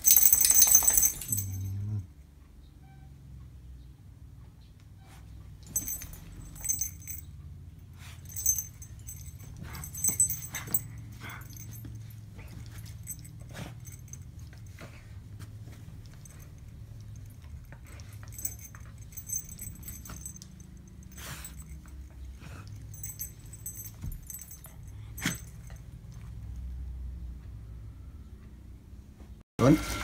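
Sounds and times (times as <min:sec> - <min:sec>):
dog harness jingling: 0:00.0 - 0:01.9, 0:05.6 - 0:07.3, 0:08.1 - 0:14.9, 0:15.9 - 0:25.9.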